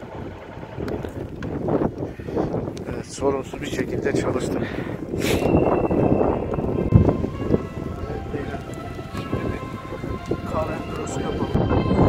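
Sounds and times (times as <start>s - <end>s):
background music: 5.3s - 12.0s.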